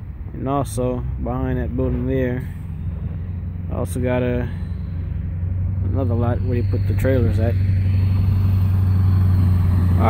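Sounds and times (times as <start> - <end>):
diesel truck engine droning: 0.0 - 10.0.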